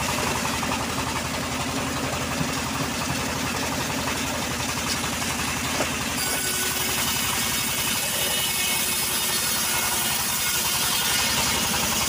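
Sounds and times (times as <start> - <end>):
band sawmill running: 0.0 - 12.0.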